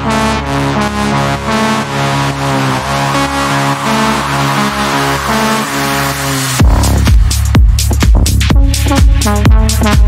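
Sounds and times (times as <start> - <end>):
buzzy brassy synthesizer chords: 0.0 - 10.0.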